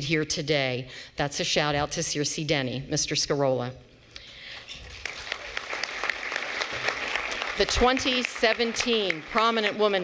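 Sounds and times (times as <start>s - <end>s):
audience applause: 4.8s - 10.0s.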